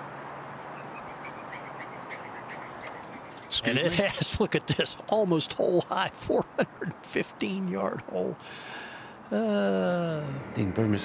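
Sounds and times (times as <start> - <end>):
outdoor background: 0.0 - 11.0.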